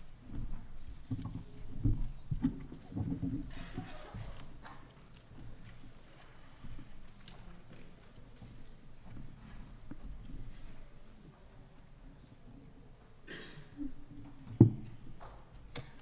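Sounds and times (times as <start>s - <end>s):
low knocks and thumps: 0.1s - 4.6s.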